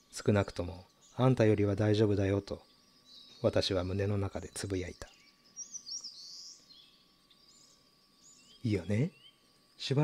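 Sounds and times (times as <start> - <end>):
faint birdsong chirps: 0.0 - 10.0.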